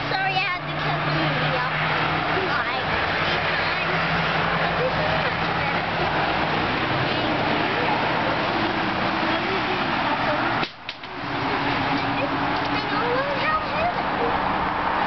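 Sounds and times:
faint voices: 0:00.0 - 0:15.0
loud droning hum: 0:00.0 - 0:15.0.

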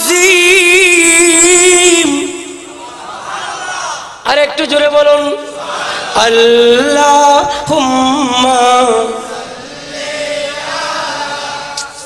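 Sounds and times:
group chanting over loudspeakers: 0:02.4 - 0:04.2, 0:05.3 - 0:12.0.

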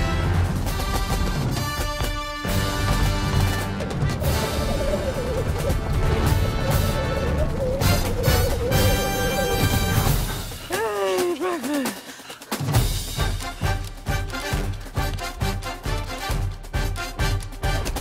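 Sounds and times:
action film score: 0:00.0 - 0:18.0.

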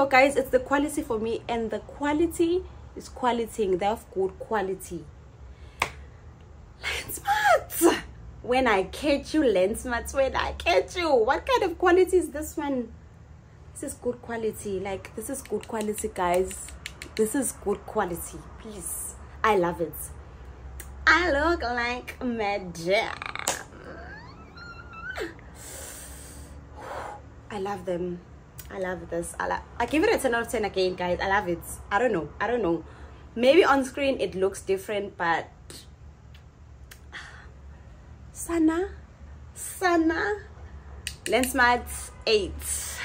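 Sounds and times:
finger snap: 0:05.8 - 0:06.0, 0:15.3 - 0:17.4, 0:36.3 - 0:37.1, 0:41.0 - 0:41.6.

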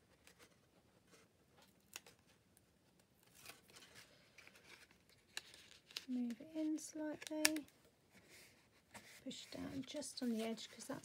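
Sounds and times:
paper card rustling: 0:03.2 - 0:11.0.

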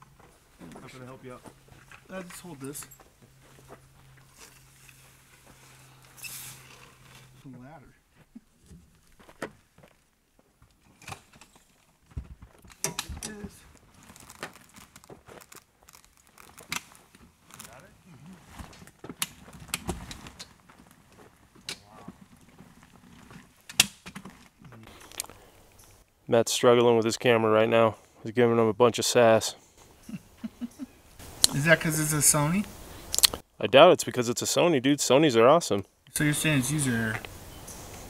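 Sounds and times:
faint clicks and rustles: 0:08.1 - 0:26.2.

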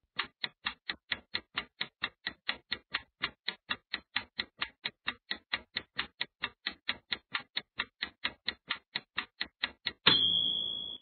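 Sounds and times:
clock-like ticks: 0:00.0 - 0:11.0
high ringing tone: 0:10.1 - 0:11.0.

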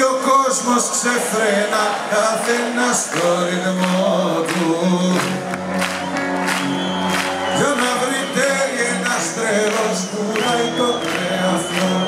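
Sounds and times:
person singing: 0:00.0 - 0:06.0, 0:07.4 - 0:12.0
live band playing: 0:05.0 - 0:12.0.

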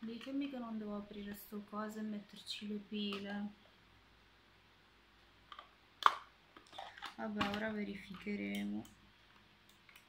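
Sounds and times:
plastic clicks: 0:00.0 - 0:00.6, 0:03.0 - 0:03.4, 0:05.4 - 0:10.0.

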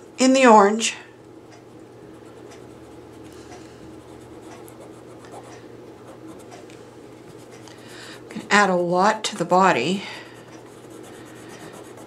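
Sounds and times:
crayon scratching on fabric: 0:10.7 - 0:12.0.

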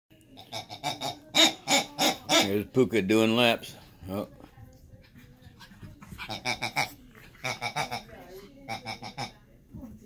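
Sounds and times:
squeaky dog toy squeaking: 0:00.4 - 0:02.8, 0:06.3 - 0:09.4.

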